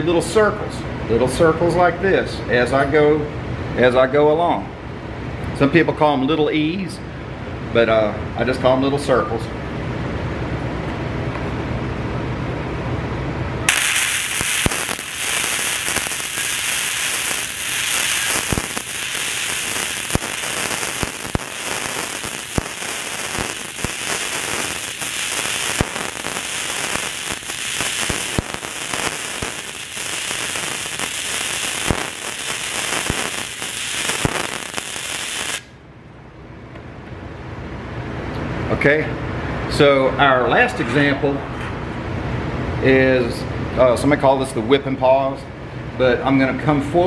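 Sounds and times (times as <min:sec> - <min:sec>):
welding arc hissing and popping: 0:13.7 - 0:35.7.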